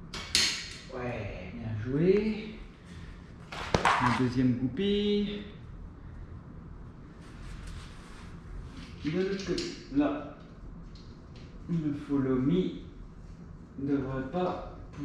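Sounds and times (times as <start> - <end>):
man speaking: 3.9 - 5.6, 11.7 - 12.9.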